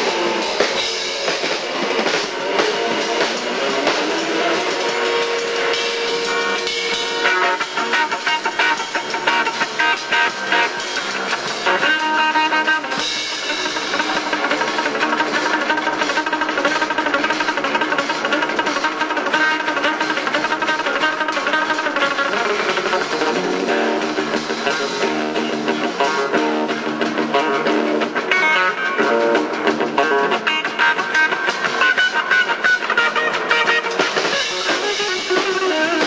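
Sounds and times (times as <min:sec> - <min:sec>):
electric guitar: 0:00.0 - 0:36.0
live rock band playing: 0:00.0 - 0:36.0.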